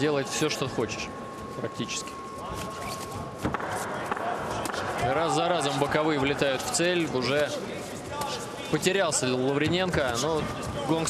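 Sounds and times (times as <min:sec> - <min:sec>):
crowd din: 0:02.6 - 0:11.0.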